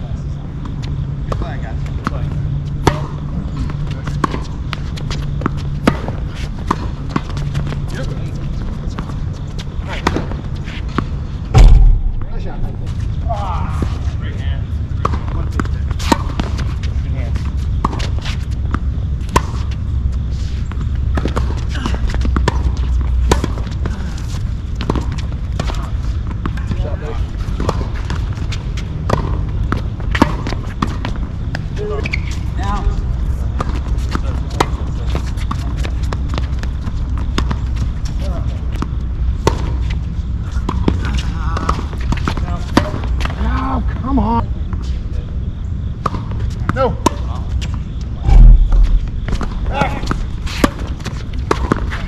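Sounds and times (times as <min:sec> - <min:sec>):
tennis balls struck and bouncing: 0:00.6 - 0:13.1, 0:14.7 - 0:43.4, 0:45.8 - 0:52.0
steady low rumble: 0:06.8 - 0:25.6, 0:47.9 - 0:51.5.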